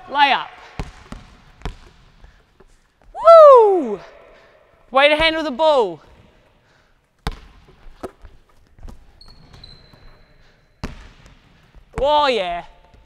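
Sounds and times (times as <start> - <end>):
basketball bouncing on wooden court: 0.5 - 3.1, 7.2 - 13.0
faint thin high squeal: 9.2 - 10.4.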